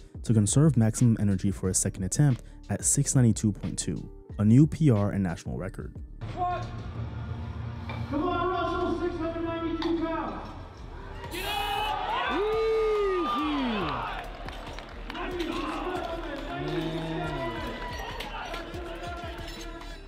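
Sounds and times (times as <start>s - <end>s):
background music: 0.0s - 20.0s
crowd yelling encouragement: 11.0s - 19.4s.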